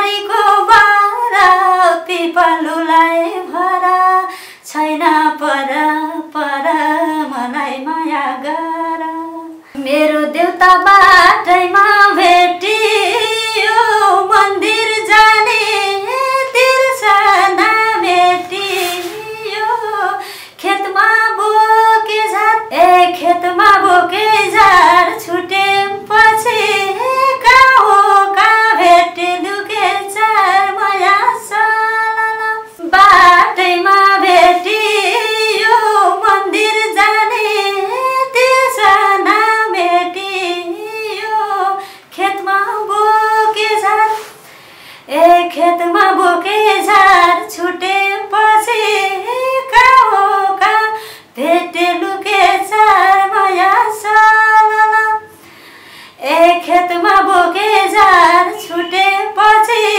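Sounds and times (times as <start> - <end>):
woman singing unaccompanied: 0.0 - 44.4, 45.0 - 55.4, 56.1 - 59.9.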